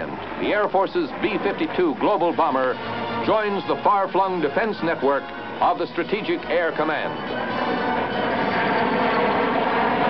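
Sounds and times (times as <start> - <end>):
jet engines running: 0.0 - 10.0.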